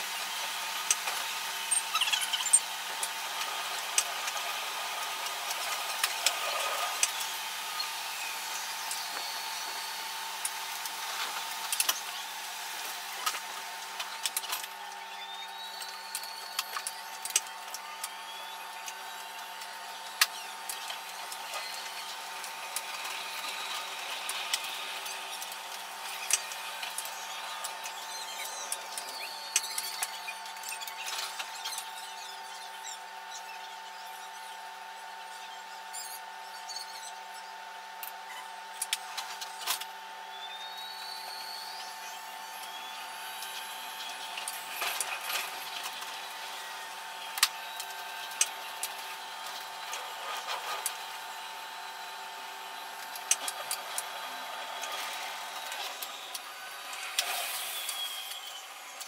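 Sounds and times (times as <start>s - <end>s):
train mechanical hum: 0.0s - 59.0s.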